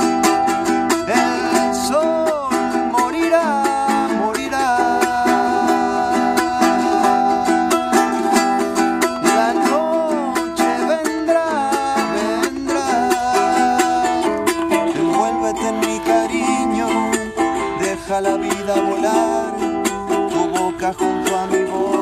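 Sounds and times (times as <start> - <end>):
man singing: 0.0 - 22.0
strummed stringed instrument: 0.0 - 22.0.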